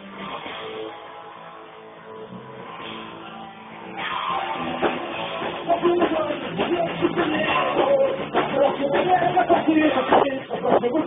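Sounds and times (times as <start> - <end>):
electric guitars: 0.0 - 11.0
drum hits: 4.6 - 11.0.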